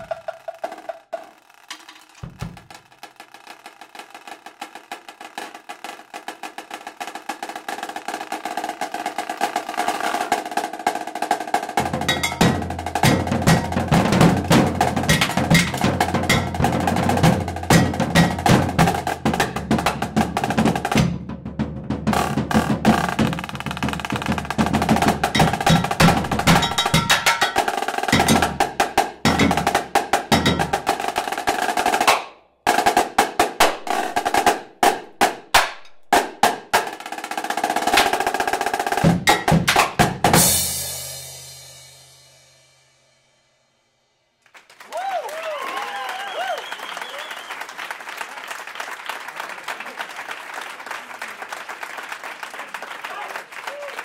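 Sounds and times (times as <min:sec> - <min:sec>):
marching snare drums: 0:00.0 - 0:42.2.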